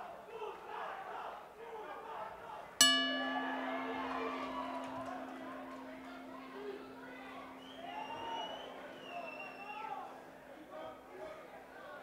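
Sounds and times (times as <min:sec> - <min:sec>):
boxing ring bell ringing: 0:02.8 - 0:10.2.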